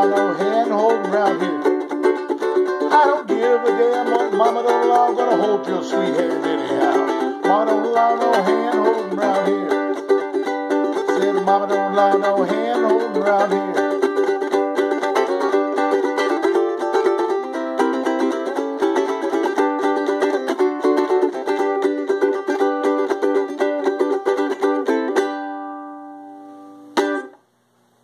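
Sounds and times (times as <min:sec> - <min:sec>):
ukulele strumming: 0:00.0 - 0:27.4.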